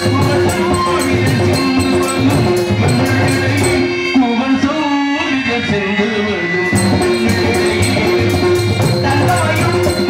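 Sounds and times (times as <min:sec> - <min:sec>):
hand drums: 0:00.0 - 0:04.2, 0:06.6 - 0:10.0
jingling tambourine: 0:00.0 - 0:04.2, 0:06.7 - 0:10.0
sliding melody line: 0:00.0 - 0:04.5, 0:06.6 - 0:10.0.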